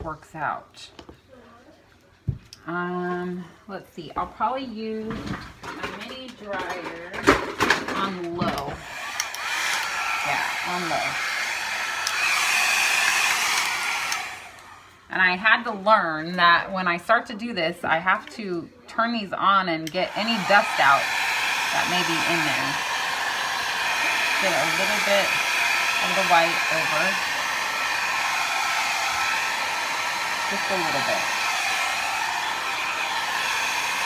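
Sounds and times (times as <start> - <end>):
hair dryer running: 6.6 - 15.5, 19.8 - 34.0.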